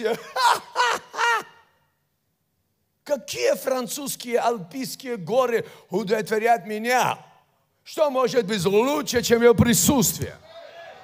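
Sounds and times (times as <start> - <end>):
man speaking through microphone: 7.9 - 10.4.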